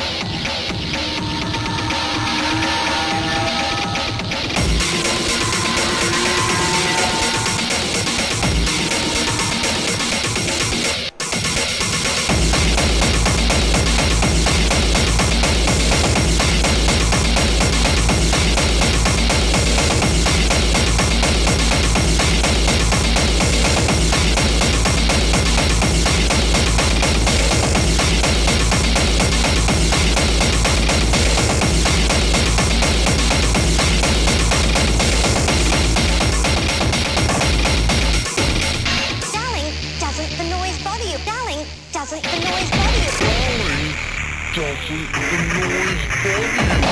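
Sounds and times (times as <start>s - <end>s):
low bass drone: 0.0s - 11.5s, 12.2s - 38.8s
pounding electronic beat: 0.0s - 40.8s, 42.1s - 44.0s, 44.6s - 46.9s
fast hardcore techno: 0.0s - 46.9s
warped sampled voice: 0.7s - 11.0s.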